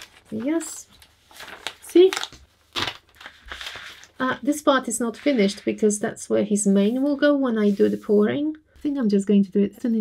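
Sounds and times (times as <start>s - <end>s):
paper rustling: 0.0s - 4.4s, 5.0s - 5.8s.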